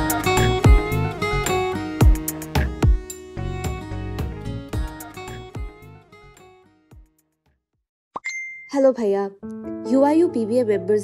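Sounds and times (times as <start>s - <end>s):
background music: 0.0s - 7.2s, 9.0s - 11.0s
phone notification ding: 8.2s - 8.8s.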